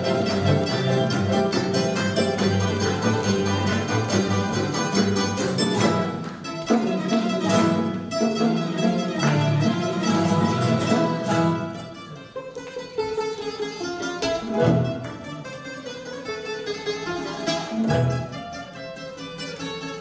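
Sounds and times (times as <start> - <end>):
chamber ensemble playing dance tune: 0.0 - 20.0
plucked strings: 0.0 - 20.0.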